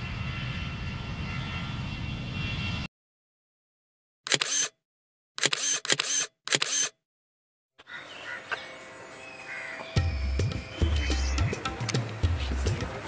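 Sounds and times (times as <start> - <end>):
camera shutter clicks: 4.3 - 4.8, 5.4 - 7.0
faint outdoor background sound: 7.8 - 13.0.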